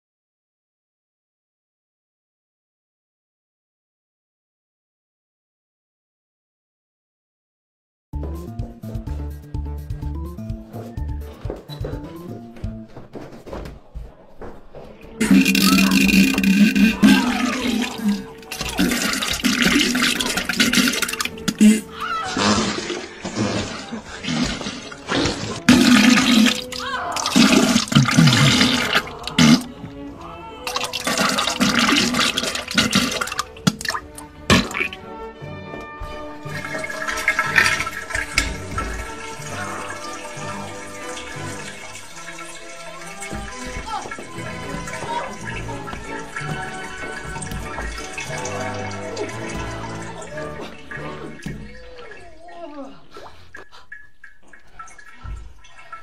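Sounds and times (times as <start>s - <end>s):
woman's vocal sounds: 15.2s - 18.3s
toilet flushing: 15.2s - 29.8s, 30.7s - 35.0s, 36.2s - 56.0s.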